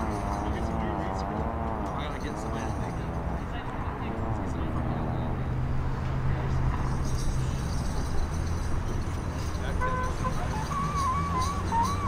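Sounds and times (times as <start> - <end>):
truck engine rumbling: 0.0 - 12.0.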